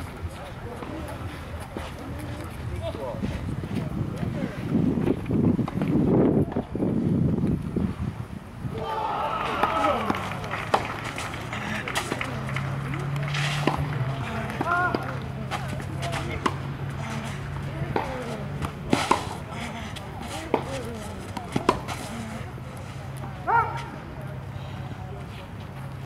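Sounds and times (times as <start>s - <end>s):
racquets striking tennis ball: 9.5s - 22.6s.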